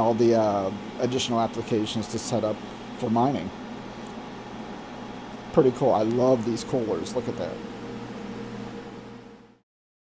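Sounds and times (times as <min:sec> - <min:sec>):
computer cooling fans humming: 0:00.0 - 0:09.6.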